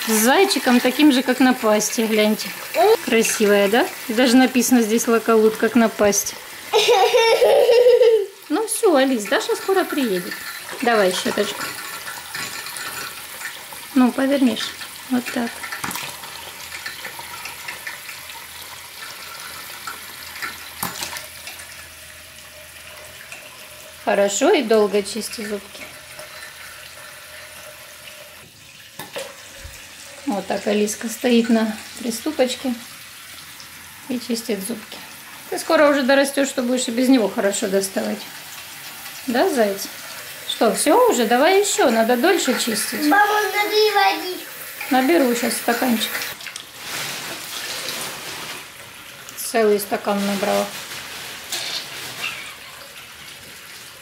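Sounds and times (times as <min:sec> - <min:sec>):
tap running into washbasin: 0:00.0 - 0:34.1.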